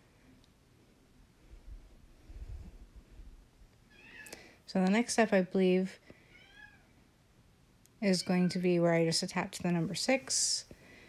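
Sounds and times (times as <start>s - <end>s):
cat meowing faintly: 3.9s - 4.3s, 6.3s - 6.9s.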